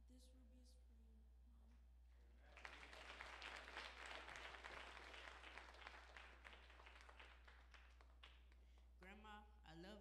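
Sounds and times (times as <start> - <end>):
congregation applauding: 2.4 - 8.8.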